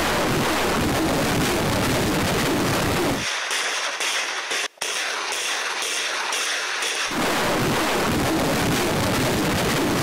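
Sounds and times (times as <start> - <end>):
rocket launches roaring: 7.1 - 10.0.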